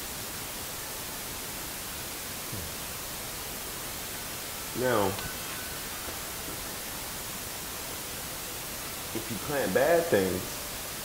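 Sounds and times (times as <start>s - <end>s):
steady even hiss: 0.0s - 11.0s.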